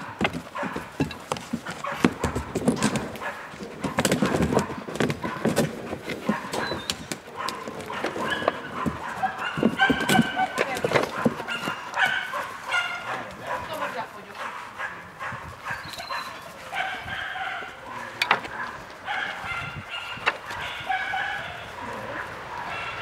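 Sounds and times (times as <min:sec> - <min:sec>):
knocks and scrapes: 0:00.0 - 0:13.0
puppies yipping and whining: 0:06.2 - 0:13.1, 0:15.3 - 0:23.0.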